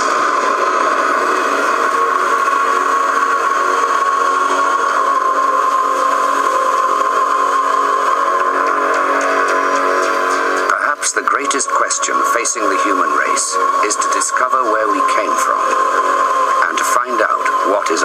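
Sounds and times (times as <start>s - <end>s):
drone of held tones: 0.0s - 18.0s.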